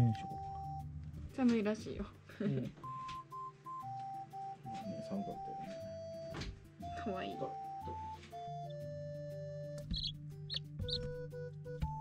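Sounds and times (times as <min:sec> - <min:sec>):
background music: 0:00.0 - 0:12.0
baby chicks peeping: 0:09.6 - 0:11.3.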